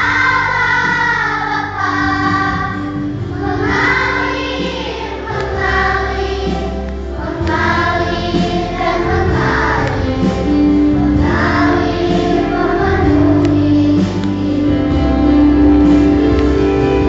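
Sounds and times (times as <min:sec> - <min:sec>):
children's choir singing: 0:00.0 - 0:17.0
instrumental accompaniment: 0:00.0 - 0:17.0.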